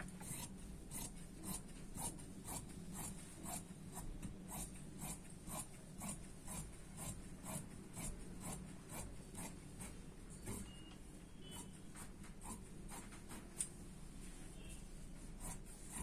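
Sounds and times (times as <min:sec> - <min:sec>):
scissors cutting fabric: 0:00.0 - 0:10.8, 0:11.5 - 0:13.7, 0:15.3 - 0:16.0.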